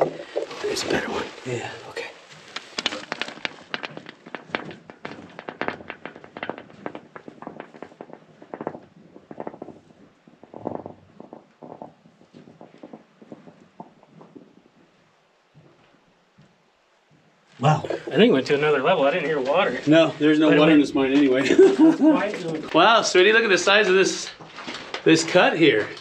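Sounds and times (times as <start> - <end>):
rock clattering down a shaft: 0.0 - 1.3, 2.4 - 14.8, 17.6 - 26.0.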